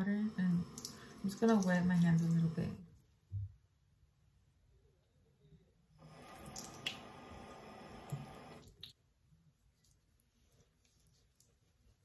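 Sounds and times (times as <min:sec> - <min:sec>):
sink tap running: 0:00.0 - 0:02.8, 0:06.0 - 0:08.6.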